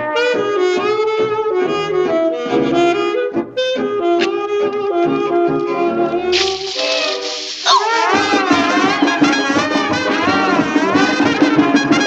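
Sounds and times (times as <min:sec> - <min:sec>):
cartoon sizzling hiss: 0:06.3 - 0:09.1
sharp cry with swooping pitch: 0:06.5 - 0:08.5.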